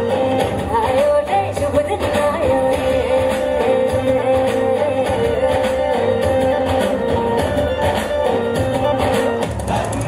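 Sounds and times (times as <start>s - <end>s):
instrumental music with pulsing beat: 0.0s - 10.0s.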